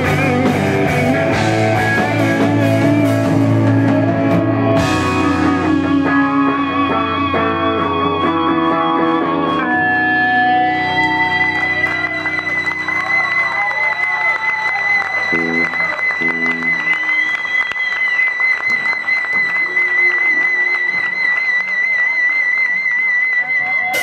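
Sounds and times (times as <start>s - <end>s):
crowd clapping and cheering: 0.0s - 24.0s
electric guitar feedback tone: 0.0s - 24.0s.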